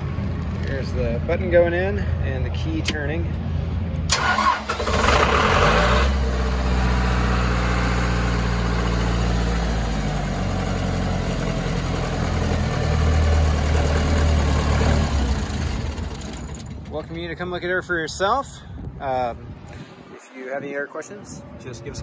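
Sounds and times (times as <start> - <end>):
diesel engine cranking and running: 4.0 - 17.1.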